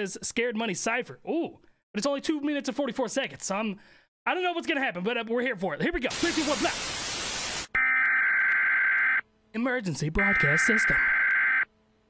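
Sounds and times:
tv static hiss: 6.1 - 7.7.

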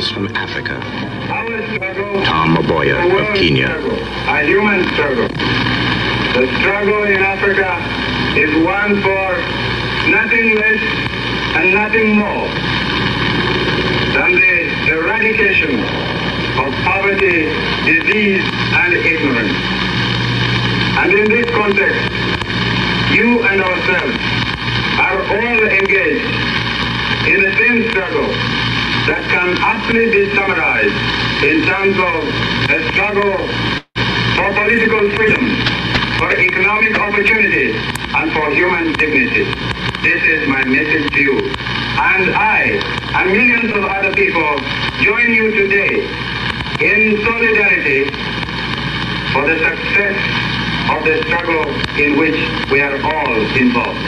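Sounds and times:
archival speech recording: 0.0 - 5.5, 6.2 - 12.7, 14.0 - 19.7, 20.9 - 22.2, 23.0 - 24.3, 24.9 - 26.5, 27.2 - 33.6, 34.4 - 48.2, 49.3 - 54.0
steady hiss and hum: 0.0 - 54.0.

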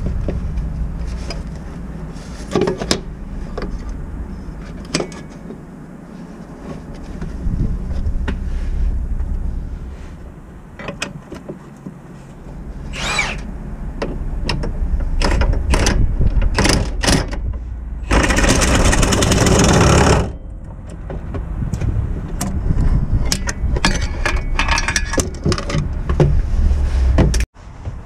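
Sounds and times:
power tool burst: 12.9 - 13.5
metallic clicks and knocks: 14.0 - 22.6, 23.2 - 26.4.

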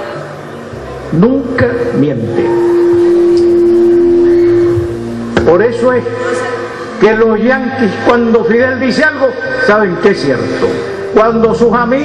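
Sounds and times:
microphone feedback howl: 2.0 - 8.4.

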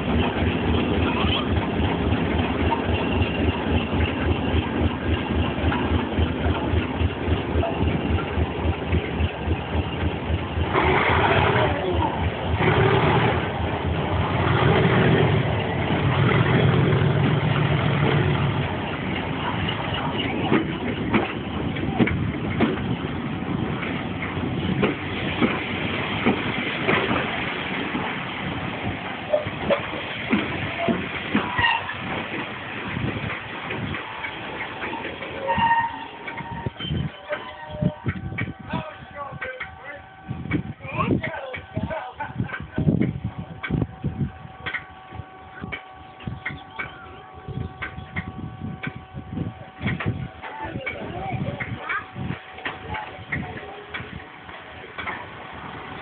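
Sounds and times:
diesel locomotive engines: 0.0 - 56.0
train wheels clicking over rail joints: 0.0 - 56.0.

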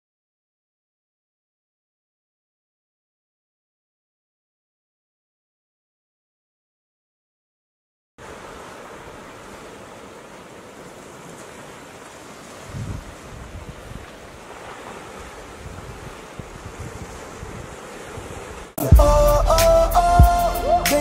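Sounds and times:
ocean waves washing: 8.2 - 21.0.

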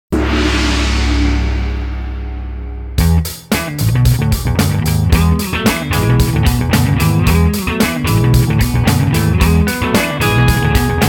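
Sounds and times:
struck musical hit with deep ring: 0.1 - 3.9.

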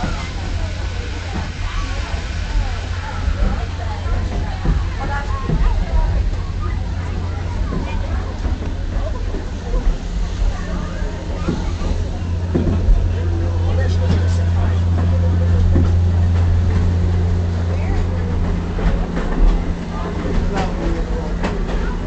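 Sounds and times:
train rumbling: 0.0 - 22.0
voices talking: 0.0 - 22.0.

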